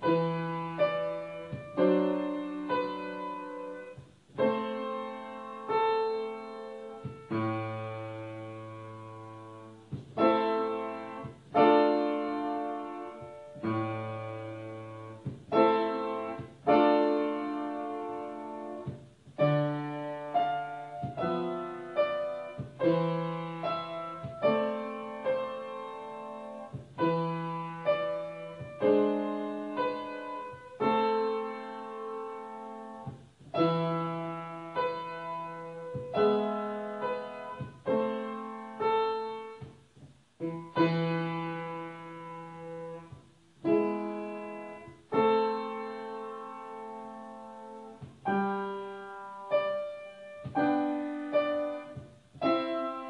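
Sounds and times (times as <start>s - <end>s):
upright piano chords: 0.0s - 53.0s.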